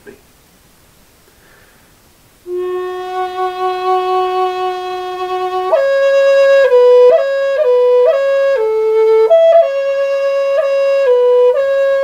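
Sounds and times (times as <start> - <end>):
flute long held note: 2.5 - 12.0.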